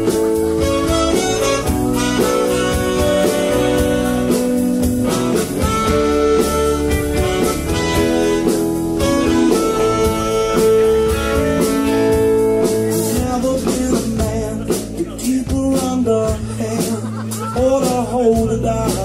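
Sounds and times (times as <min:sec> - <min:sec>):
horn section playing: 0:00.0 - 0:13.2
bass guitar: 0:00.0 - 0:19.0
drum kit beat: 0:00.0 - 0:19.0
electric guitars: 0:00.0 - 0:19.0.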